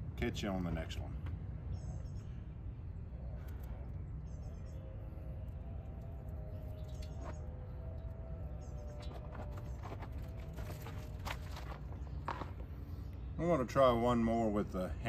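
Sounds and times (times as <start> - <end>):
low outdoor rumble: 0.0 - 15.0
faint bird chirps: 1.6 - 10.9.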